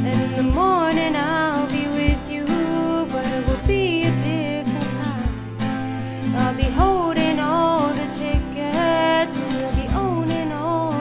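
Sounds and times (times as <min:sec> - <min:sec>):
strummed acoustic guitar: 0:00.0 - 0:11.0
woman singing: 0:00.0 - 0:11.0.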